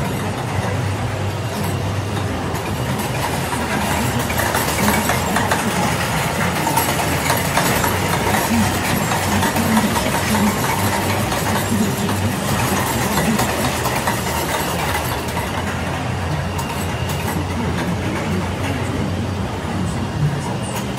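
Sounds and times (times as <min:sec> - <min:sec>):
low machine hum: 0:00.0 - 0:20.9.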